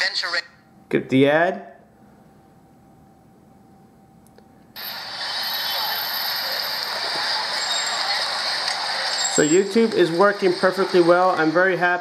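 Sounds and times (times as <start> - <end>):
traffic noise through phone speaker: 4.8 - 11.1
crowd noise through phone speaker: 4.8 - 12.0.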